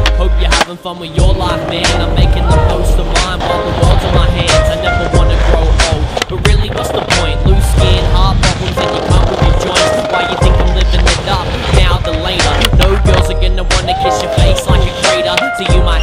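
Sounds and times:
skateboard clacking on concrete: 0.0 - 0.8, 12.1 - 13.4, 14.0 - 15.9
hip-hop backing track: 0.0 - 16.0
skateboard wheels rolling: 0.0 - 16.0.

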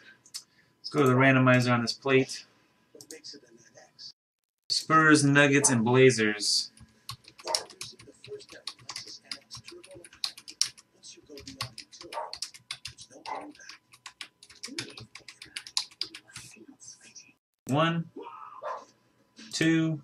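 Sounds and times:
keyboard typing clicks: 7.1 - 10.8.

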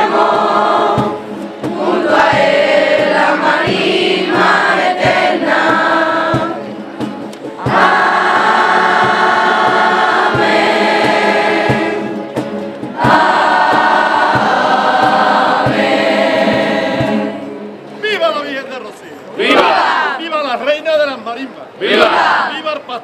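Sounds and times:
group singing in unison: 0.0 - 6.7, 7.6 - 17.8, 19.4 - 20.2, 21.8 - 22.5.

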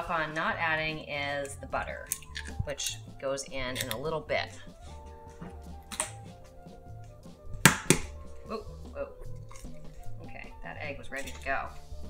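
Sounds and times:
soft background music: 0.0 - 12.0
egg cracking against hard edge: 7.6 - 8.2.

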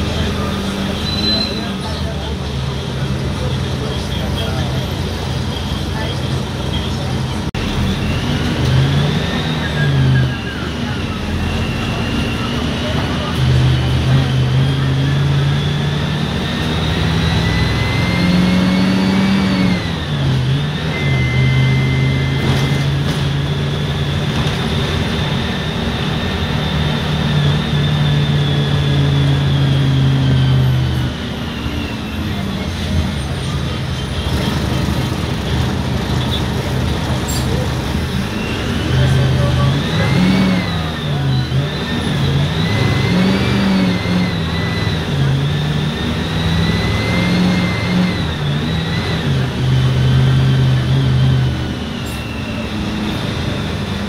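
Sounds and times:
bus diesel engine: 0.0 - 54.0.

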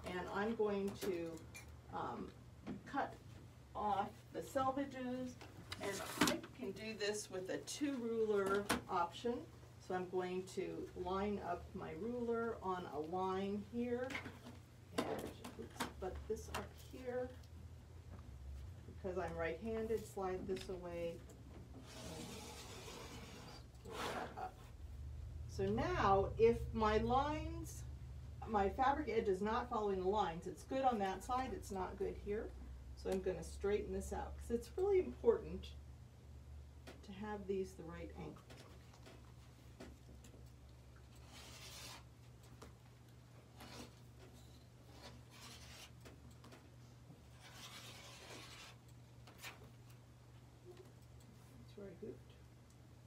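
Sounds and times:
steady low hum: 0.0 - 53.0
fabric and ruler sliding on mat: 21.8 - 24.4, 41.2 - 42.1, 47.3 - 48.8.

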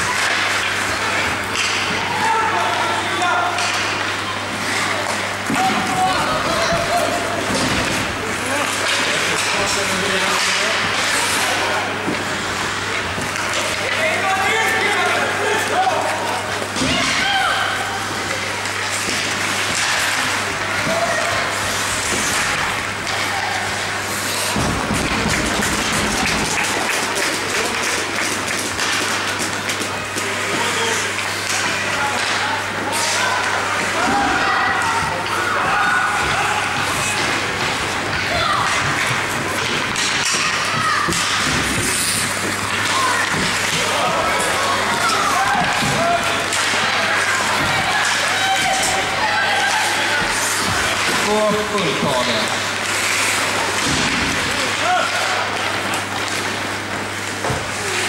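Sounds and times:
hockey sticks and puck knocking: 0.0 - 2.4, 5.0 - 15.0, 18.2 - 58.0
low arena hum: 0.0 - 58.0.

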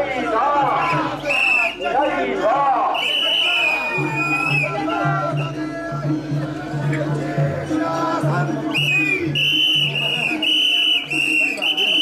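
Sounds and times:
people chanting: 0.0 - 11.1
whistle blown in short blasts: 1.2 - 1.8, 2.9 - 4.8, 8.7 - 12.0.

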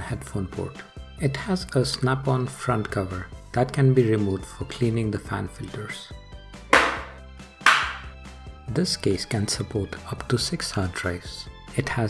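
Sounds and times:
background music: 0.0 - 12.0
metal cover clacking onto chassis: 6.8 - 8.1.

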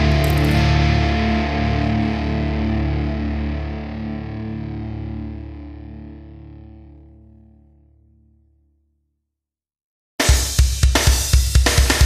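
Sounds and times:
distorted electric guitar chord: 0.0 - 7.6.

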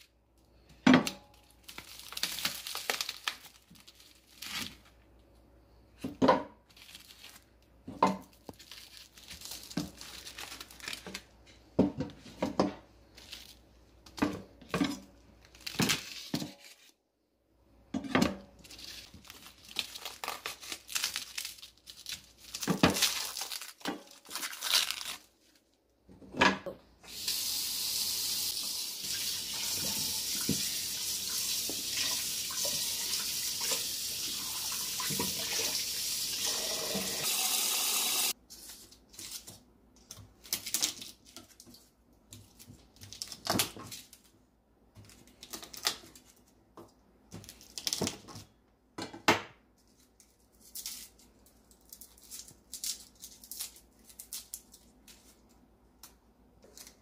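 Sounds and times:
crinkling and handling noises: 0.0 - 17.0, 18.0 - 26.8, 38.3 - 57.0
cling film peeling and tearing: 1.6 - 4.9, 18.7 - 25.6
kitchen tap running: 27.1 - 38.4.

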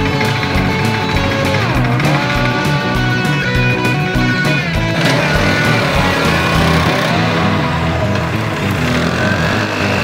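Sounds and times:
rock music with electric guitar: 0.0 - 10.0
scooter engine passing by: 4.8 - 10.0.

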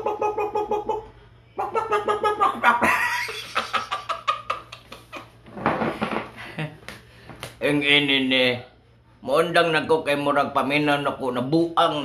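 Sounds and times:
man wheezing laughter: 2.2 - 5.4.

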